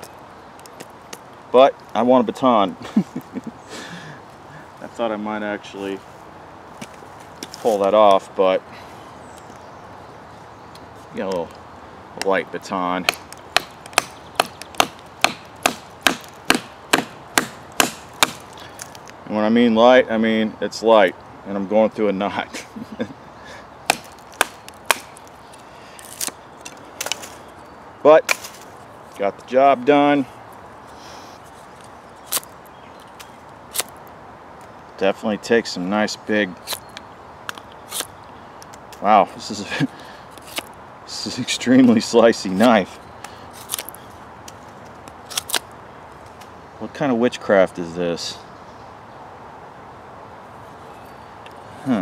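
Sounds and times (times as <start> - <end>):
knife scraping wood: 37.8 - 38.1, 40.3 - 40.7, 43.5 - 44.0.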